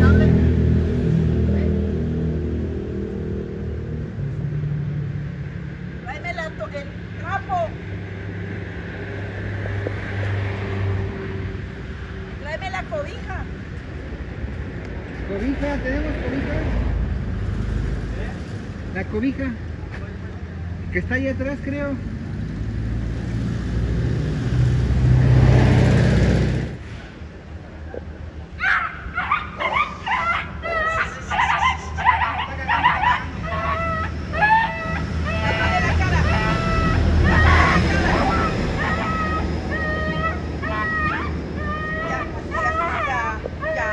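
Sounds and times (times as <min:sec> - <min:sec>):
motor vehicle running: 0:00.0 - 0:27.8, 0:31.0 - 0:43.9
puppy yelping and squealing: 0:28.6 - 0:43.9
vehicle engine running: 0:35.0 - 0:40.8.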